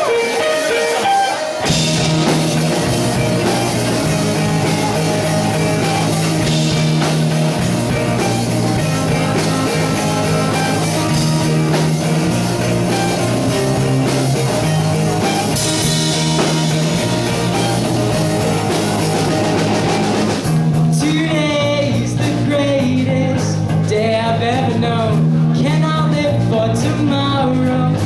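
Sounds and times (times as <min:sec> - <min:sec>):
live rock band: 0:00.0 - 0:28.0
young man singing: 0:20.9 - 0:28.0.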